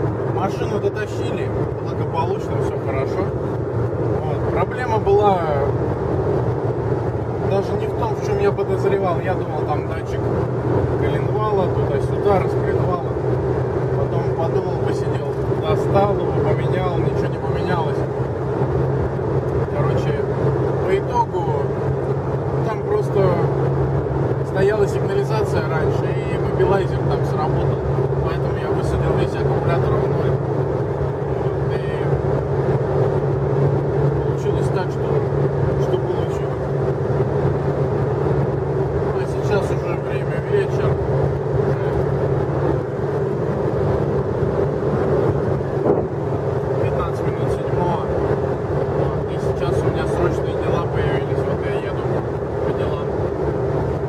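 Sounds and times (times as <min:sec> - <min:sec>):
car engine and tyres drone: 0:00.0 - 0:54.0.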